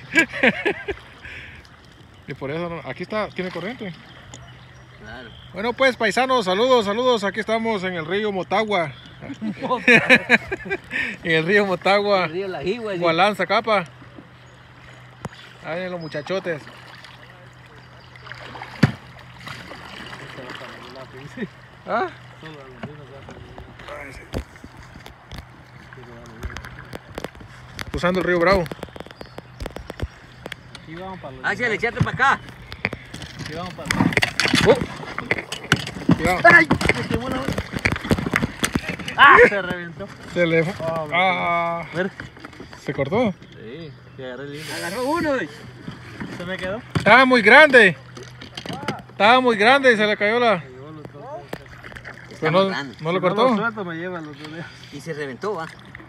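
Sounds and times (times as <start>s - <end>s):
man laughing: 0.0s - 1.4s, 9.3s - 11.2s
voices talking: 0.0s - 56.0s
river current rushing: 14.7s - 39.6s.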